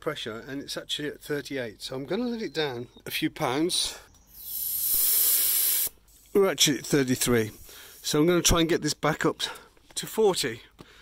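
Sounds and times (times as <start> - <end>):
air hissing from tyre valve: 4.3 - 6.4, 7.4 - 8.2.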